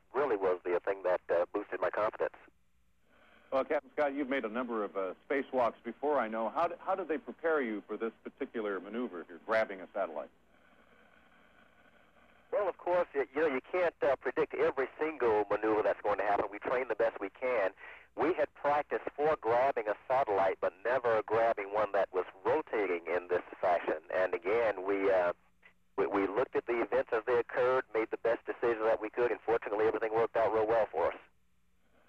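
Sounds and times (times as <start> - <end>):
man speaking over radio link: 0.1 - 2.4, 3.6 - 10.3, 12.6 - 25.4, 26.0 - 31.2.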